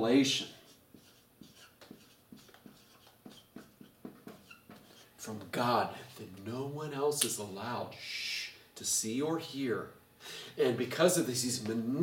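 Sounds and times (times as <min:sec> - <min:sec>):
marker writing on whiteboard: 0:00.4 - 0:05.1
marker squeaks: 0:00.5 - 0:05.1.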